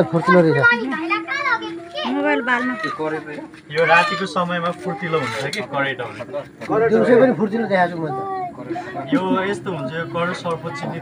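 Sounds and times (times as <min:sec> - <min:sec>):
children's voices: 0:00.0 - 0:05.6, 0:08.0 - 0:11.0
people talking: 0:00.0 - 0:11.0.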